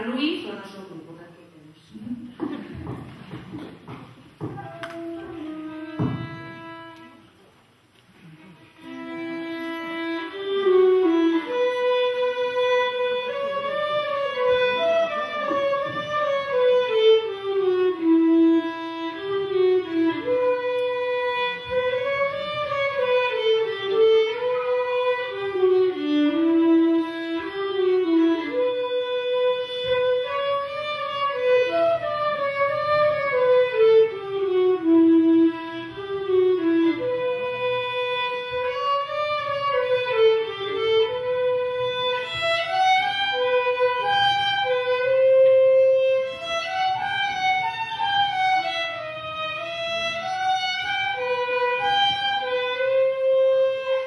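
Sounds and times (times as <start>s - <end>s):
cajon beat: 2.2s - 6.9s, 13.6s - 17.3s
folk tune on fiddle: 4.4s - 7.5s, 8.3s - 54.0s.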